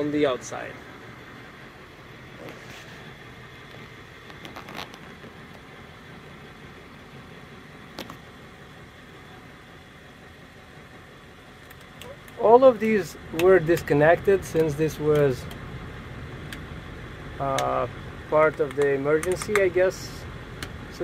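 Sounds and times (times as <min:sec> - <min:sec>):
air conditioning blowing: 0:00.0 - 0:21.0
diesel engine idling: 0:00.0 - 0:21.0.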